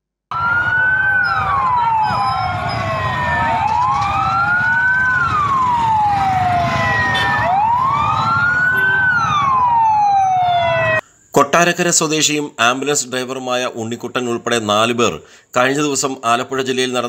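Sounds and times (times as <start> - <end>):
ambulance sirens wailing: 0.3 - 11.0
low rumble of vehicles: 0.4 - 11.0.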